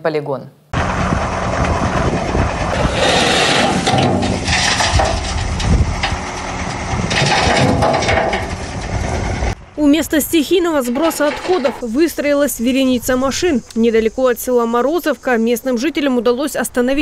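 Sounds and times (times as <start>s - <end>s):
diesel truck engine running: 0.8s - 12.2s.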